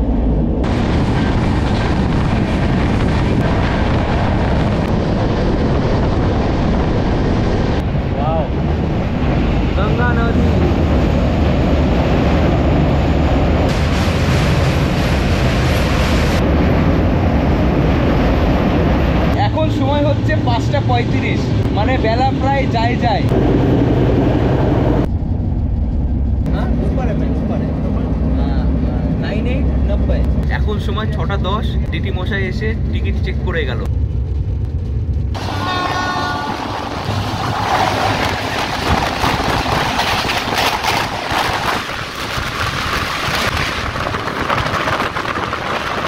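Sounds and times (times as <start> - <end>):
moving train rumble: 0.0 - 46.0
wind rushing over microphone: 0.0 - 46.0.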